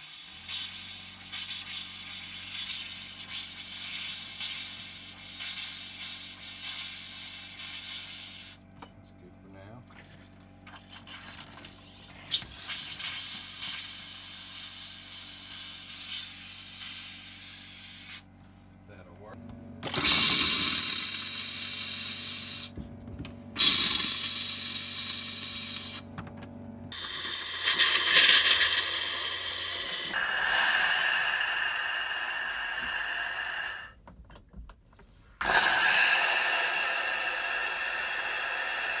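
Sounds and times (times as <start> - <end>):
compressed air hissing with spitting water: 0.0 - 8.6, 10.7 - 18.3, 19.8 - 22.8, 23.6 - 26.1, 26.9 - 34.0, 35.3 - 39.0.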